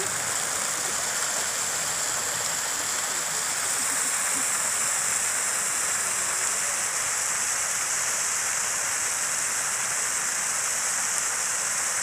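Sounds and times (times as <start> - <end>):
fountain water splashing: 0.0 - 12.0.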